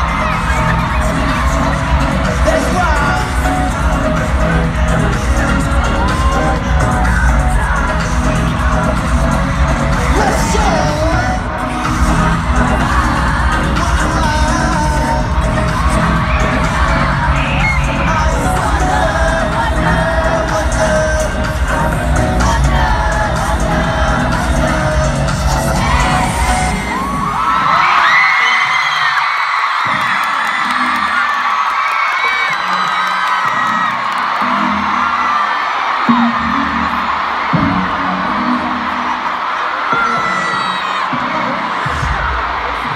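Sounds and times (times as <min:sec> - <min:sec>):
crowd screaming and cheering: 0:00.0 - 0:42.9
pop music with singing: 0:00.0 - 0:42.9.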